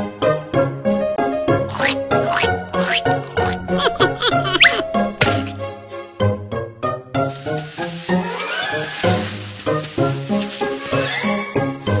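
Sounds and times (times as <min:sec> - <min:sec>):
bouncy cartoon music: 0:00.0 - 0:07.3
long hissing sliding effect: 0:07.3 - 0:10.4.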